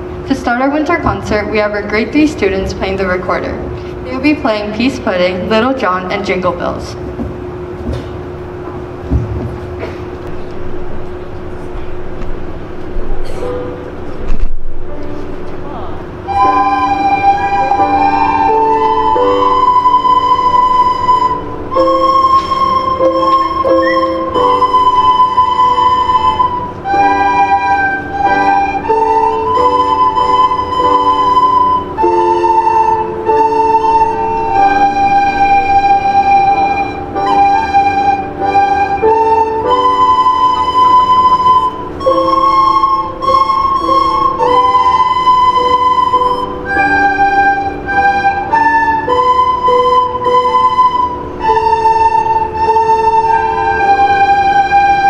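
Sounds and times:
piano chords: 0:00.0 - 0:55.0
children playing recorders: 0:16.3 - 0:55.0.

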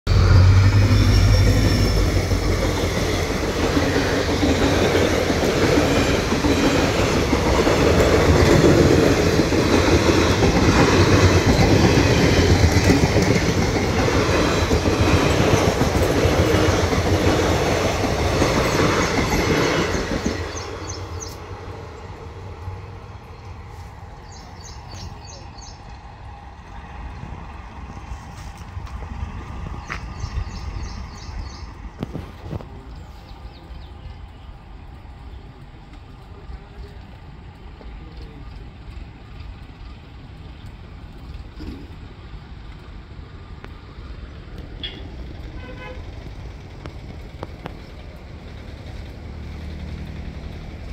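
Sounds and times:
train wheels rumbling on rail: 0:00.1 - 0:50.9.

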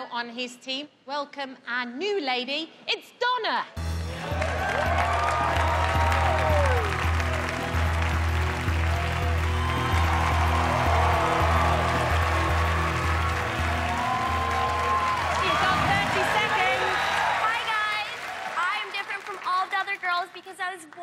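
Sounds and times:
studio audience applauding: 0:03.8 - 0:21.0.

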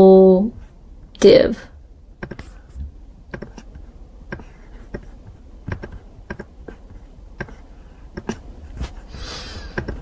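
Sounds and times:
computer mouse and keyboard clicks: 0:02.2 - 0:02.5, 0:03.3 - 0:05.1, 0:05.7 - 0:06.5, 0:08.2 - 0:08.4, 0:09.7 - 0:10.0.

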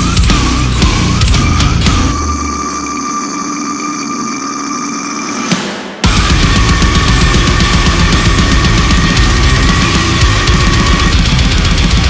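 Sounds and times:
death metal band: 0:00.0 - 0:12.0
high held guitar tone: 0:00.0 - 0:12.0.

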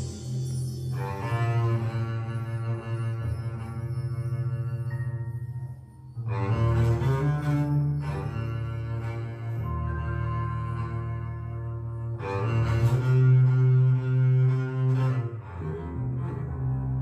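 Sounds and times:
deep bowed strings music: 0:00.0 - 0:17.0.

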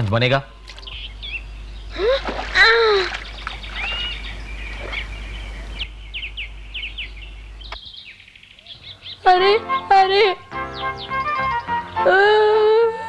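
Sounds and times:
birds chirping: 0:00.0 - 0:13.0
water splash: 0:02.0 - 0:05.1.

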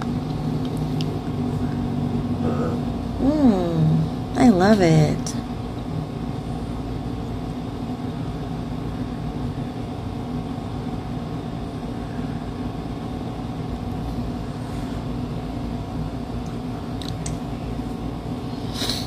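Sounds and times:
low machine hum with tones: 0:00.0 - 0:19.0.

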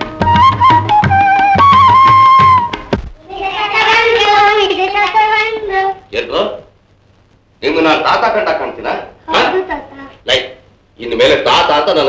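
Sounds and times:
child singing: 0:03.2 - 0:05.8.

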